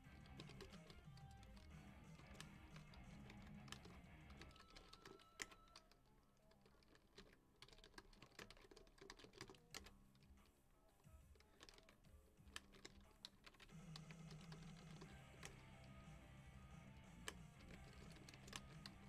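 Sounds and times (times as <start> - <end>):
keyboard typing: 0.0 - 10.6, 11.2 - 19.0
quiet background music: 0.0 - 19.0.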